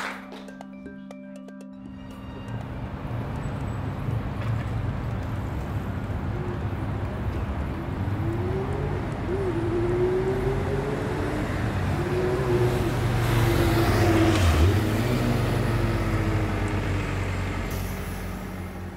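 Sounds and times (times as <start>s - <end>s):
vehicle engines humming: 1.7s - 18.9s
steady traffic noise: 1.9s - 18.9s
vehicle passing close: 2.6s - 18.9s.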